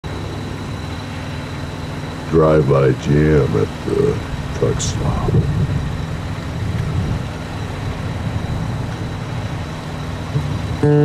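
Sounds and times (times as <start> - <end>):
truck engines idling: 0.0 - 11.0
thin high-pitched whine: 0.1 - 11.0.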